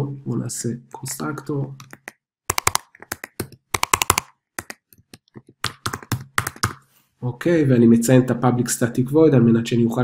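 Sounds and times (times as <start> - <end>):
typing on computer keyboard: 1.8 - 6.8.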